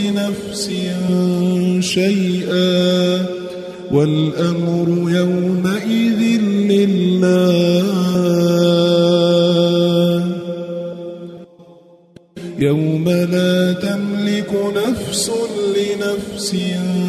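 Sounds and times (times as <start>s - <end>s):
person chanting melodic recitation: 0.0s - 11.5s, 12.4s - 17.0s.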